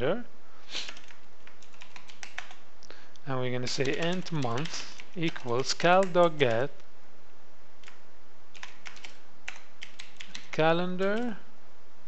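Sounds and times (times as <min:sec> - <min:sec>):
steady background hiss: 0:00.0 - 0:12.0
computer keyboard typing: 0:00.8 - 0:02.6, 0:03.6 - 0:06.7, 0:07.8 - 0:11.4.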